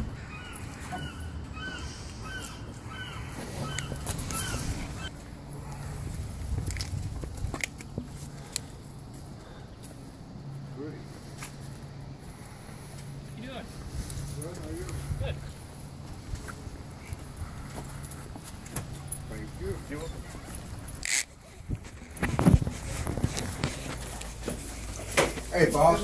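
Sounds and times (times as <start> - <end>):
bird calling short notes: 0.2 - 5.1.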